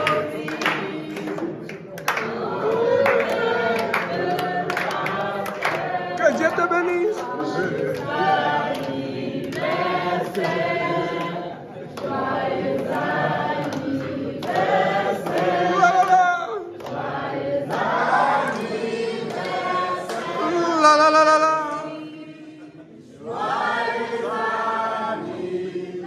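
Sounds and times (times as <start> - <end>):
hand clapping: 0.0 - 22.0
people singing a birthday song: 0.0 - 26.0.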